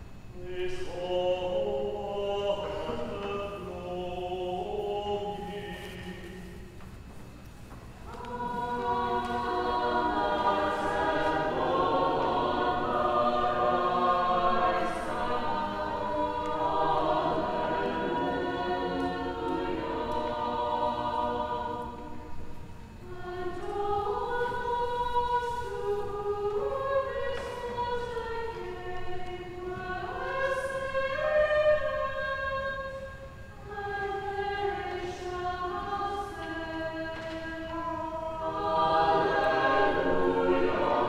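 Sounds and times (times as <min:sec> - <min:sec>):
choir singing a hymn: 0:00.0 - 0:07.0, 0:08.0 - 0:41.0.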